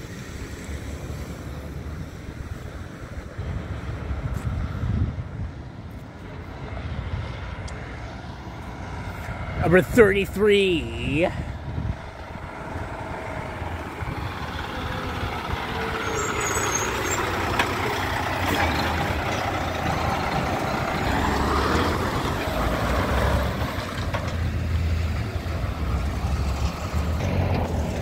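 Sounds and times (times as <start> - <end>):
truck driving past: 0.0 - 28.0
pickup truck driving past: 12.0 - 28.0.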